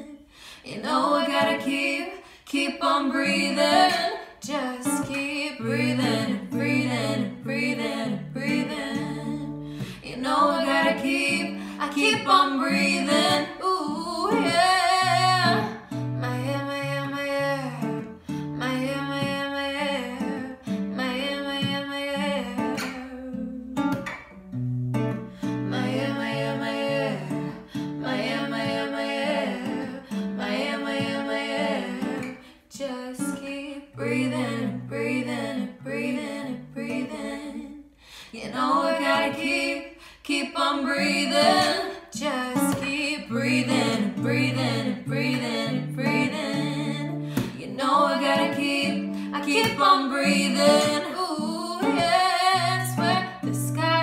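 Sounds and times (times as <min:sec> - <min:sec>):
woman singing pop song: 0:00.0 - 0:24.2, 0:25.4 - 0:54.0
acoustic guitar: 0:00.0 - 0:54.0.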